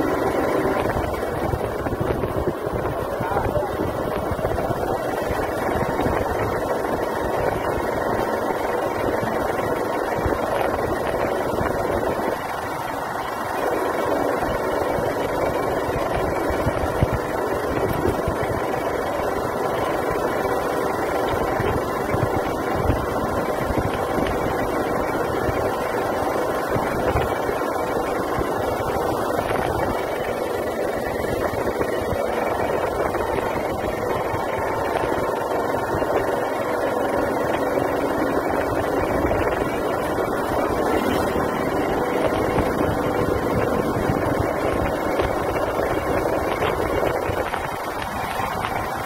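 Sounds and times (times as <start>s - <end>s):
motorcycle engine: 0.0s - 49.0s
tyres on road: 0.0s - 49.0s
wind buffeting microphone: 0.0s - 49.0s.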